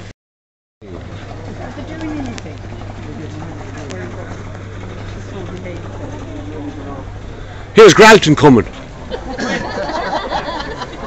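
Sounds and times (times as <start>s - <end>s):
indistinct chatter: 0.8s - 11.0s
steady low hum: 0.8s - 11.0s.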